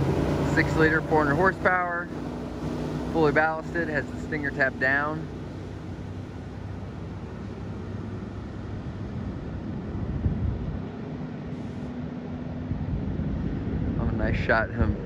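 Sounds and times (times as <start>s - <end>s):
boat engine drone: 0.0s - 15.0s
water rushing past hull: 0.0s - 15.0s.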